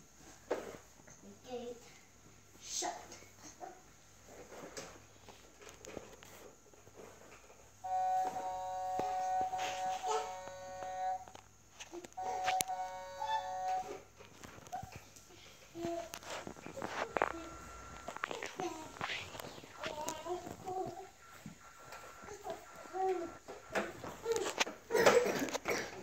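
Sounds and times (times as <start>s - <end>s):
electronic toy beeping tune: 7.9s - 11.3s, 12.2s - 14.0s, 16.7s - 24.6s.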